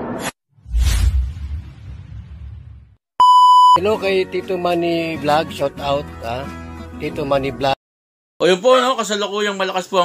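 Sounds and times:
high electronic beep: 3.2 - 3.8.

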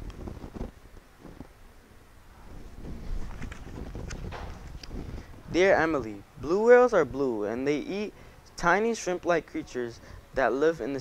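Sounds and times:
paper page turning: 3.0 - 4.9.

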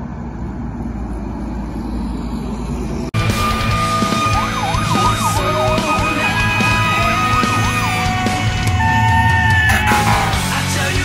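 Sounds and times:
loud background music: 3.2 - 11.0
fire engine siren yelping: 3.4 - 10.4.

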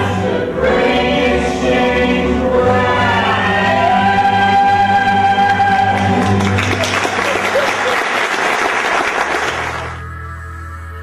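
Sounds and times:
group singing in chorus: 0.0 - 6.4
upright bass: 0.0 - 7.9.

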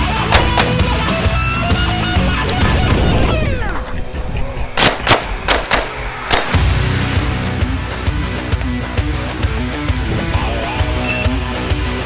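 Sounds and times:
rock music: 0.0 - 3.9, 6.0 - 12.0
pistol shots: 0.2 - 1.0, 4.8 - 6.6.

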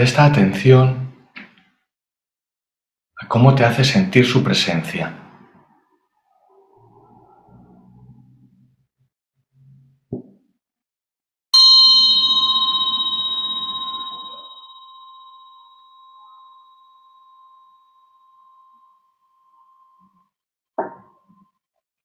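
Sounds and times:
metal meditation bell ringing: 11.6 - 19.6.

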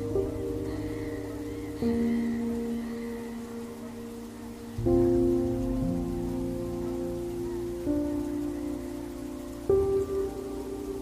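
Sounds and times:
soft music with sustained notes: 0.0 - 11.0.

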